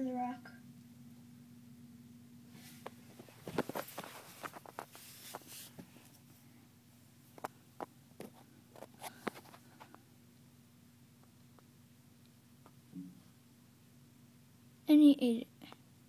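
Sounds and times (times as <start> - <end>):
faint low hum: 0.0 - 16.0
phone handling clicks and rustles: 2.8 - 5.4.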